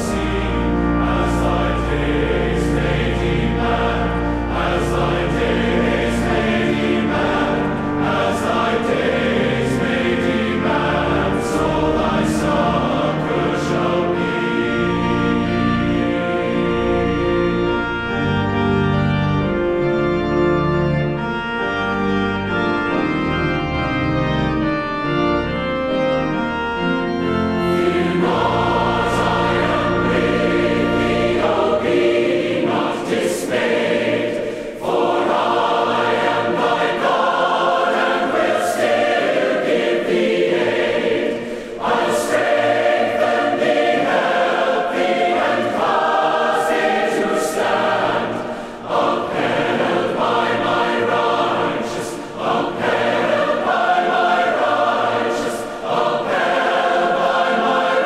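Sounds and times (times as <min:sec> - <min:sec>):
choir singing a hymn: 0:00.0 - 0:58.0
low organ notes: 0:00.0 - 0:58.0.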